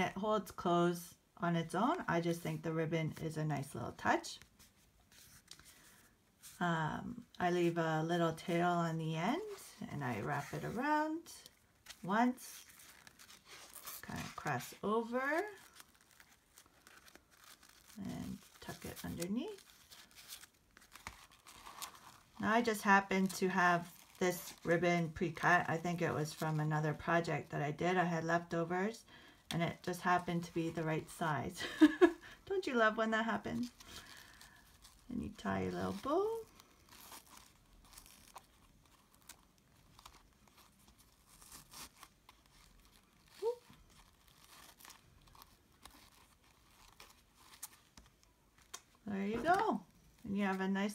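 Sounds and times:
soft crackles: 0.0s - 50.9s
ribbon and paper rustling: 1.8s - 50.9s.

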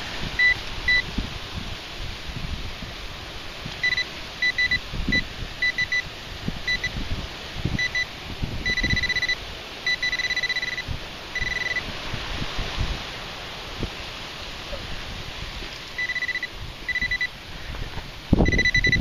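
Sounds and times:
wind rumble on microphone: 0.0s - 19.0s
pinpointer beeping: 0.4s - 1.0s, 3.8s - 6.0s, 6.7s - 6.9s, 7.8s - 10.8s, 11.4s - 11.8s, 16.0s - 17.3s, 18.4s - 19.0s.

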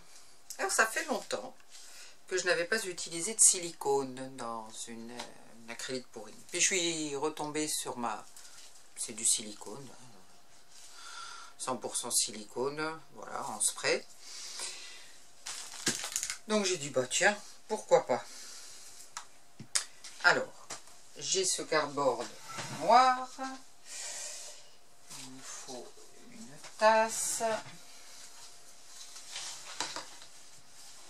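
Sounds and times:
plastic cup rustling: 15.4s - 16.4s.

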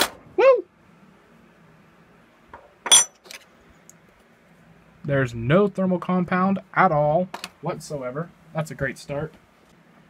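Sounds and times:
metal clink on wooden desk: 2.6s - 3.3s.

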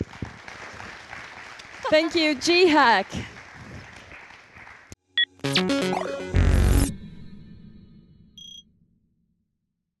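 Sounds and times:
synthesizer jingle: 5.2s - 8.6s.

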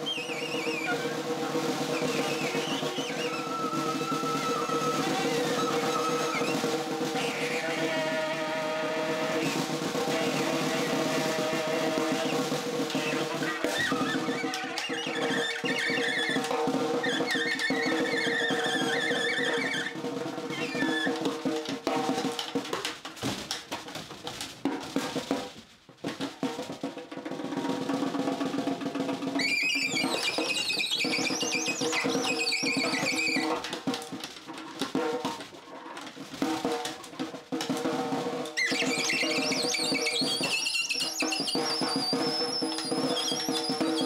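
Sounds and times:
saxophone squealing: 0.0s - 7.9s, 12.0s - 21.2s, 29.4s - 33.6s, 38.6s - 44.0s
snare drum rolls: 0.0s - 44.0s.

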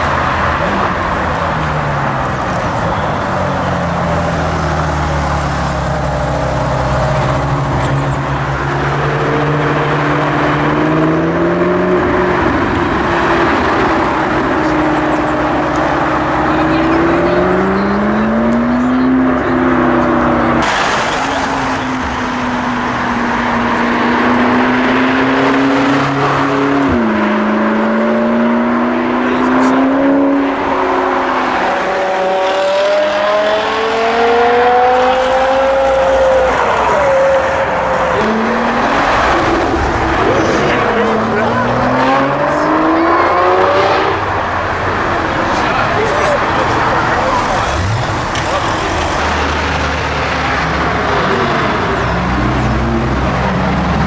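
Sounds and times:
car engines revving past: 0.0s - 54.0s.

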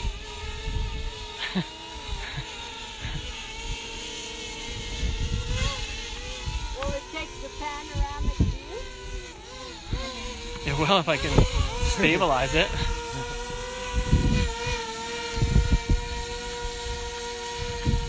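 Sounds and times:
wind rumbling on microphone: 0.0s - 1.3s, 4.4s - 18.0s
drone propellers whining: 0.0s - 18.0s.

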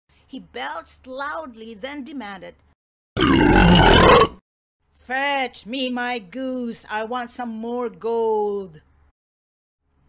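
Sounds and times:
loud belch: 3.2s - 4.4s.

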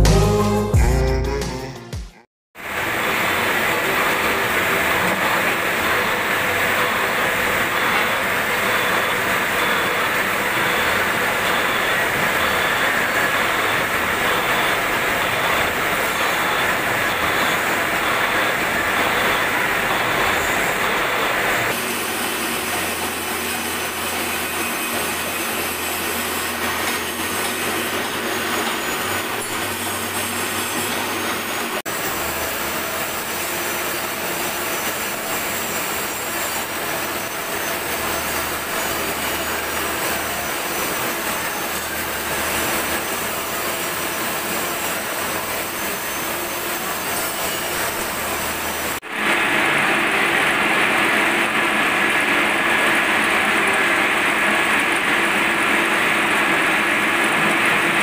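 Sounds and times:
lathe cutting metal: 2.6s - 58.0s.

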